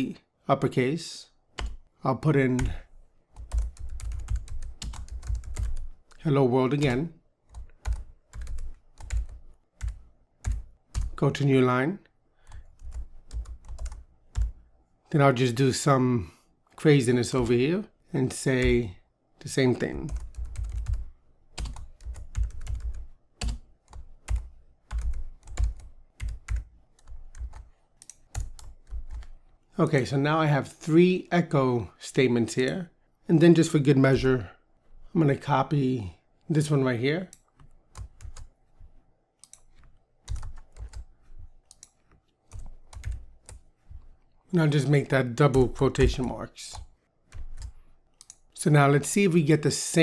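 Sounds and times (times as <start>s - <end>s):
computer keyboard keys clicking: 1.6s - 1.8s, 3.4s - 6.2s, 6.8s - 11.2s, 12.6s - 14.5s, 20.1s - 21.0s, 21.6s - 29.3s, 37.3s - 38.5s, 39.4s - 43.7s, 46.7s - 48.4s
keyboard typing clicks: 1.6s - 1.8s, 39.4s - 44.1s.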